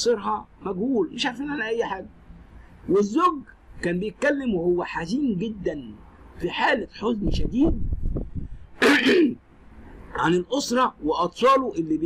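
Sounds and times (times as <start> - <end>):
man sneezing: 8.8 - 9.4.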